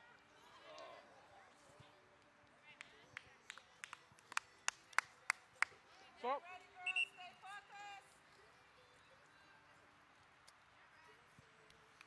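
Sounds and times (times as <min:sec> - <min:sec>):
hand claps: 0:02.8 - 0:05.8.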